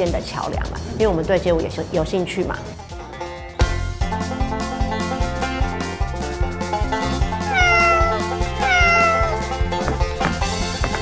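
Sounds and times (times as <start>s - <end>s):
background music with steady beat: 0.0s - 11.0s
cat meowing: 7.4s - 9.6s.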